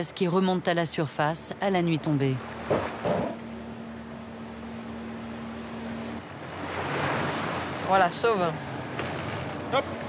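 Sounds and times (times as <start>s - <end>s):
ship machinery humming: 0.0s - 10.0s.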